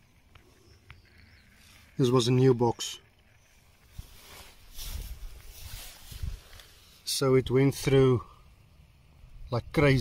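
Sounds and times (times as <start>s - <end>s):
rustling in dry grass: 3.2s - 7.3s.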